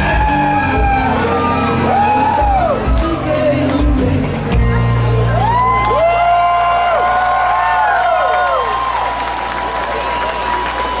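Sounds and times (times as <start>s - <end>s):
concert crowd cheering: 0.0s - 11.0s.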